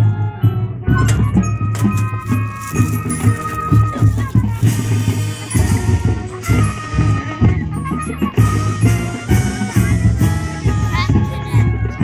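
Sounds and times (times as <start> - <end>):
front-ensemble percussion: 0.8 - 12.0
marching drumline: 1.2 - 12.0.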